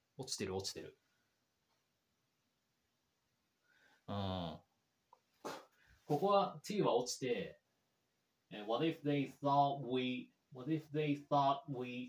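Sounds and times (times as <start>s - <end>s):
man humming or grunting: 4.1s - 4.7s.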